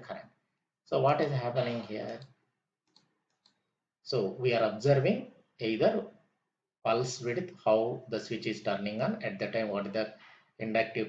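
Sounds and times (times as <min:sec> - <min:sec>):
computer mouse clicks: 0:01.2 - 0:03.6.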